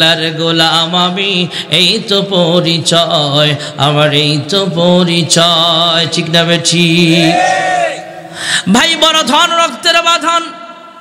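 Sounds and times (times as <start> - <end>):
man chanting through loudspeakers: 0.0 - 11.0.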